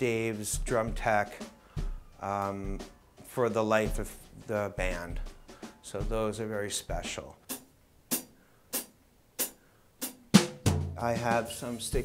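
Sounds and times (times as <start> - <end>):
sharp drum strikes: 0.0 - 12.0.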